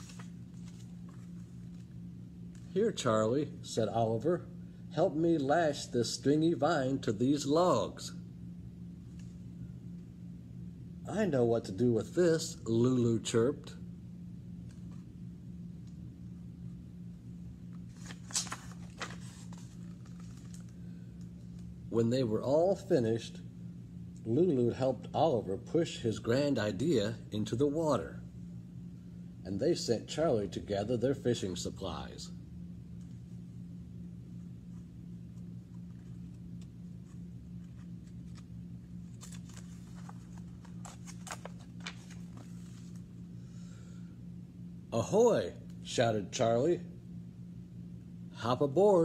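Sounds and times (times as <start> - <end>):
book page rustling: 0.0 - 2.7, 17.7 - 20.8, 34.6 - 43.1
steady low hum: 0.0 - 49.0.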